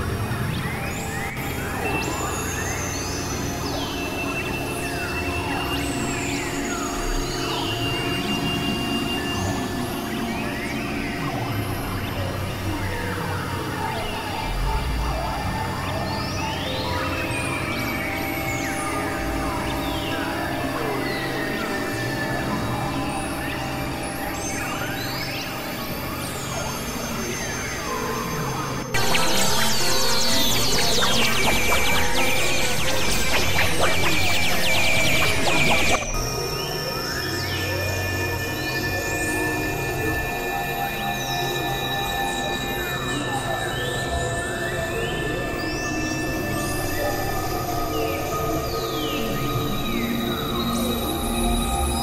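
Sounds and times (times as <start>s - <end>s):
electronic synthesizer drone: 0.0s - 37.0s
synthesizer pitch glides: 28.9s - 36.3s
thin high tone: 29.0s - 36.1s.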